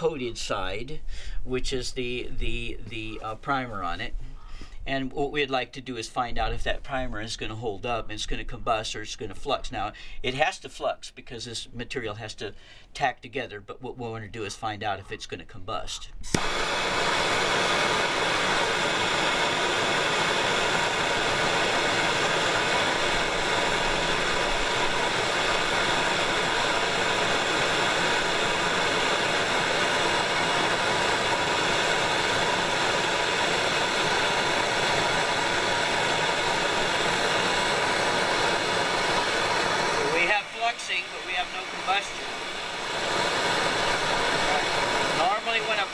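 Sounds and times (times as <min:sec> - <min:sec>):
gas torch hissing: 0:16.2 - 0:45.9.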